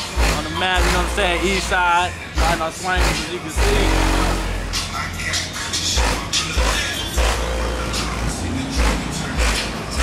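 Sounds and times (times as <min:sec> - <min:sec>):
loud hip-hop on car stereo: 0:00.0 - 0:10.0.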